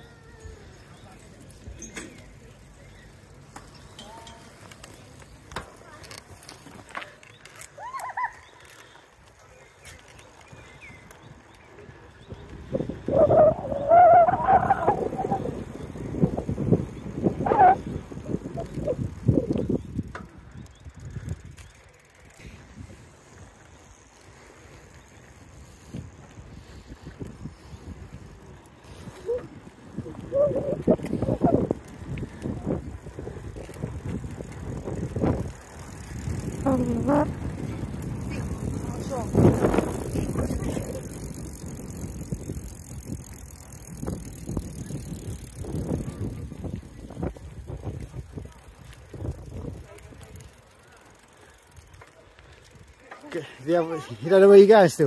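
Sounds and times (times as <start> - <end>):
bicycle rattle and tyre noise: 0.0 - 55.0
wind rumbling on microphone: 9.8 - 50.7.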